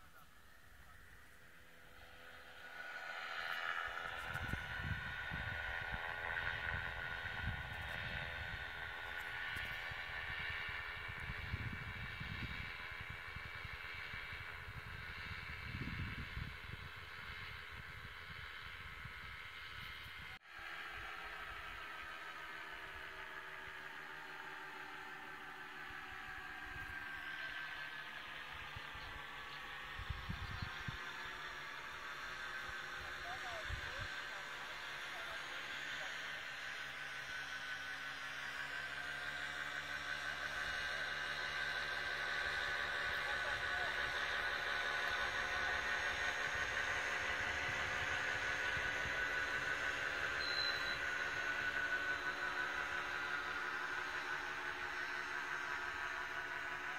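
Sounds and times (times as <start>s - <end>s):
paramotor engine droning overhead: 0.0s - 56.9s
wind buffeting microphone: 4.1s - 9.0s, 10.1s - 20.4s, 29.8s - 31.1s.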